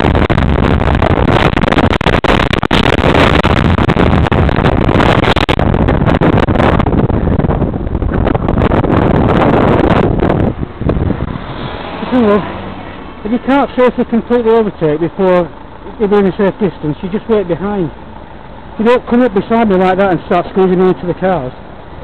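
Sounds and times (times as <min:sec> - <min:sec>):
car noise: 0:00.0 - 0:22.0
wind rushing over microphone: 0:00.0 - 0:22.0.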